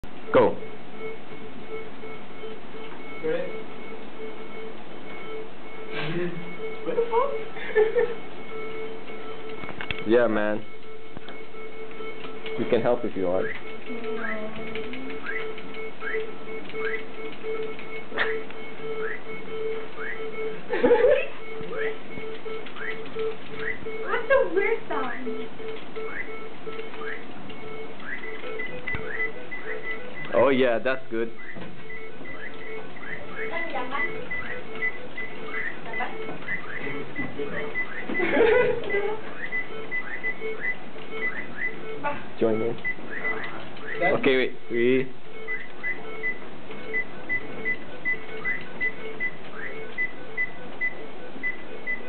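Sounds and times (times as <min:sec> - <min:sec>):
low electronic beep: 0:00.0 - 0:52.0.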